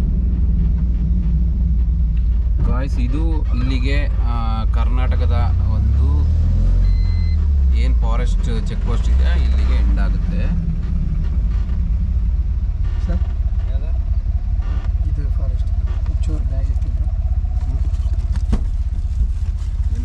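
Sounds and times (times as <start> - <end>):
truck engine rumbling: 0.0 - 20.0.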